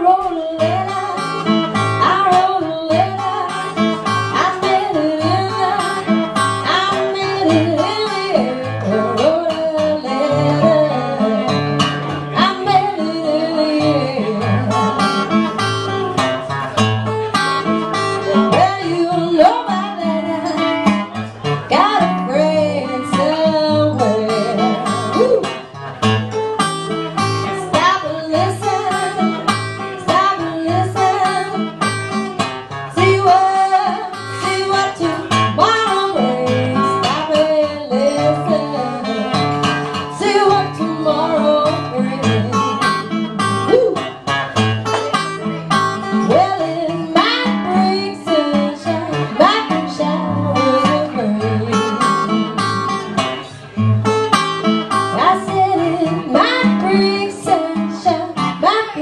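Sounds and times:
woman singing: 0:00.0 - 0:15.3, 0:17.9 - 0:25.6, 0:27.2 - 0:44.2, 0:45.7 - 0:53.5, 0:54.9 - 0:59.0
acoustic blues guitar: 0:00.0 - 0:59.0.

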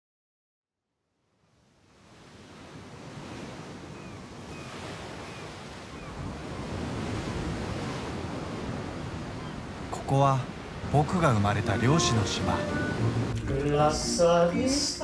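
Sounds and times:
wind: 0:01.1 - 0:15.0
sea surf: 0:01.6 - 0:15.0.

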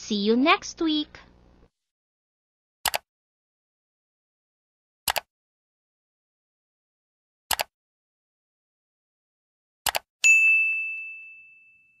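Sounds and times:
notification bell ding: 0:10.2 - 0:12.0.

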